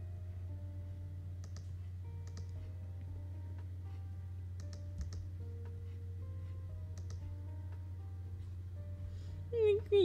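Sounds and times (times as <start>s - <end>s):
faint background music: 0.0s - 10.0s
steady low hum: 0.0s - 10.0s
computer mouse clicks: 1.4s - 2.6s, 4.6s - 5.3s, 6.9s - 7.2s.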